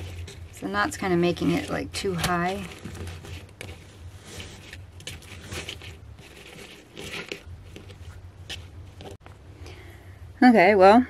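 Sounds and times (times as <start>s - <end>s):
ribbon and flower stems rustling: 0.0s - 9.3s
low steady hum: 0.0s - 11.0s.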